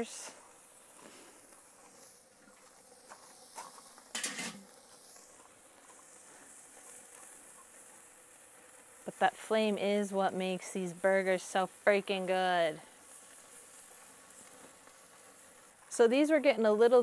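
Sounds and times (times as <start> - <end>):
burger patties sizzling on grill: 0.0 - 17.0
charcoal crackles: 0.0 - 17.0.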